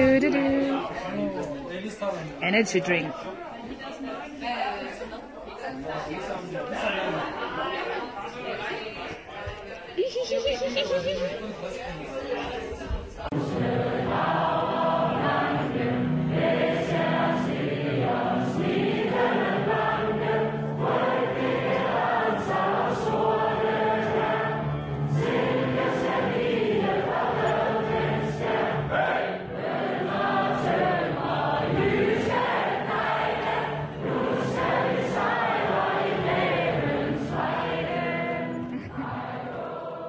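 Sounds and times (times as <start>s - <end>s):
crowd singing together: 10.0s - 40.0s.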